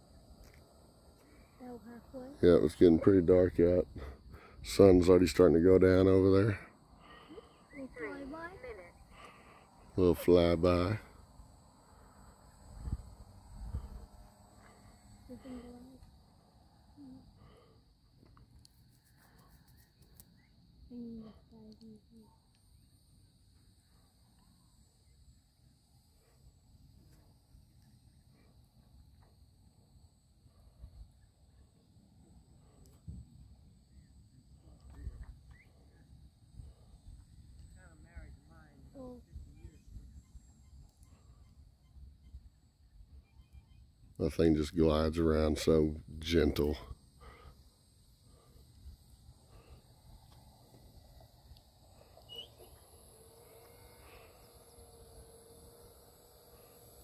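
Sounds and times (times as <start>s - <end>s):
insects chirring: 0.0s - 57.0s.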